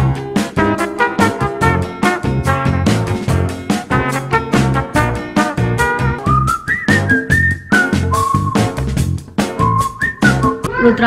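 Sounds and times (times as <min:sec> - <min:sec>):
upbeat swing music: 0:00.0 - 0:11.0
whistled melody: 0:05.9 - 0:10.7.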